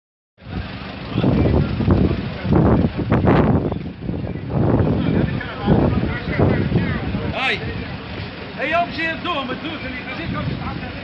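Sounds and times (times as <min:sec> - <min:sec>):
low street rumble: 0:00.4 - 0:11.0
people talking: 0:00.4 - 0:11.0.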